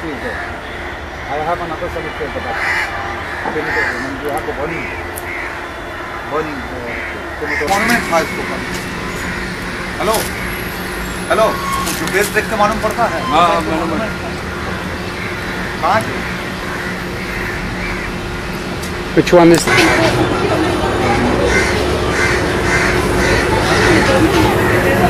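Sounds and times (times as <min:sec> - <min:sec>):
crows cawing: 0:00.0 - 0:10.6, 0:11.4 - 0:18.4, 0:19.6 - 0:20.4, 0:21.0 - 0:25.0
city traffic noise: 0:00.0 - 0:25.0
steady hum: 0:04.5 - 0:25.0.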